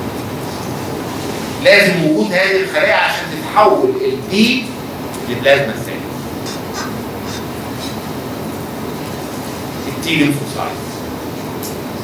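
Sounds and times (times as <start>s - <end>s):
air conditioning hum and hiss: 0.0s - 12.0s.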